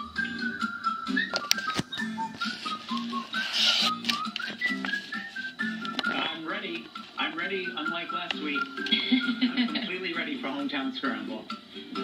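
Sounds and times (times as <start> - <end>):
game show jingle from television: 6.0 - 12.0.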